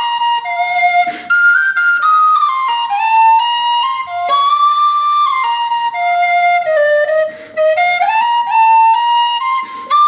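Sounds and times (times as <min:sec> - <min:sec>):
tin whistle slow melody: 0:00.0 - 0:10.0
short breath: 0:01.0 - 0:01.4, 0:07.3 - 0:07.6, 0:09.5 - 0:10.0.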